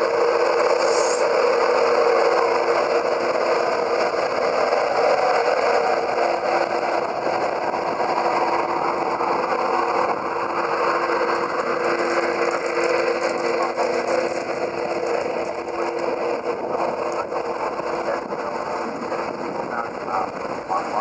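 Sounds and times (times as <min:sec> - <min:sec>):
electric locomotive hum: 0:00.0 - 0:21.0.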